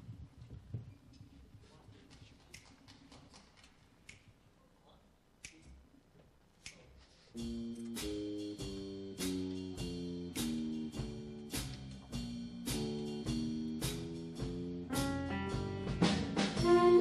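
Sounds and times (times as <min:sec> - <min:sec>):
jazz band sustained chords: 0:07.4 - 0:17.0.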